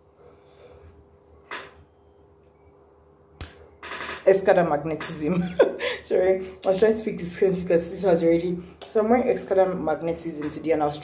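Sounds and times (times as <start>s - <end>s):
sharp click: 3.4s - 4.2s.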